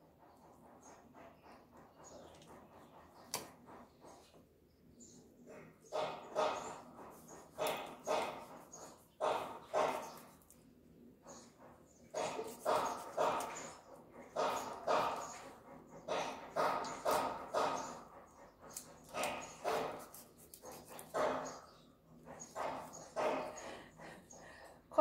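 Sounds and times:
knife chopping on wooden block: 12.2s - 13.8s, 14.4s - 15.4s.

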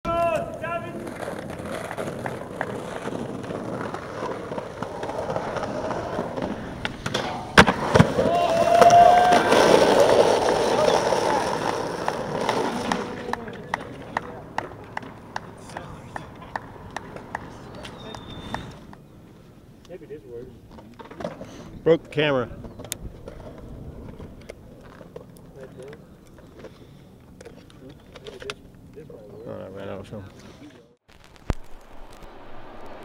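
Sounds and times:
voices: 0.1s - 1.3s, 8.2s - 23.1s
skateboard clacking: 0.1s - 19.0s
skateboard wheels rolling on pavement: 0.1s - 33.0s.

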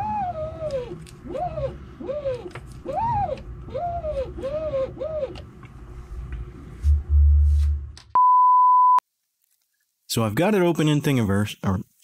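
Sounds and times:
low rumble: 5.9s - 8.0s
short rising and falling tones: 6.8s - 9.0s
high electronic beep: 8.2s - 9.0s.

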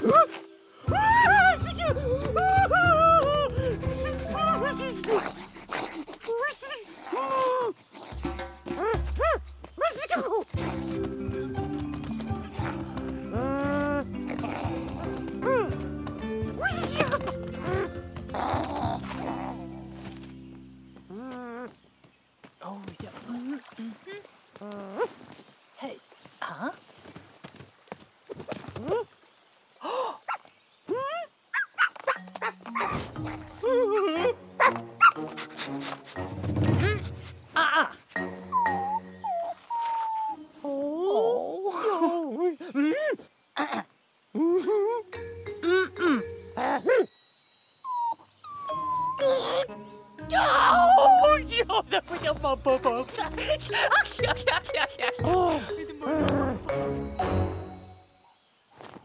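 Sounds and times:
background music: 0.0s - 5.8s, 10.6s - 21.2s, 32.0s - 40.6s, 45.1s - 58.3s
cartoon animal whines and yelps: 30.9s - 35.2s, 37.6s - 41.6s, 45.6s - 47.1s, 47.9s - 51.5s
cartoon puppy yipping and barking: 31.5s - 35.2s.

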